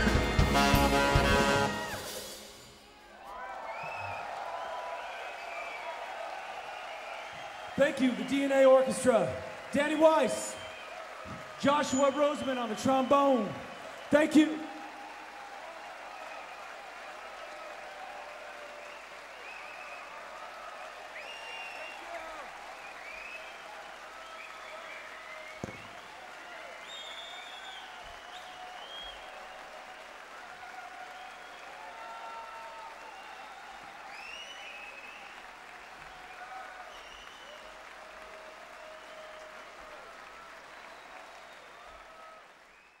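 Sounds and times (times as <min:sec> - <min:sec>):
audience applauding: 0:00.0 - 0:43.0.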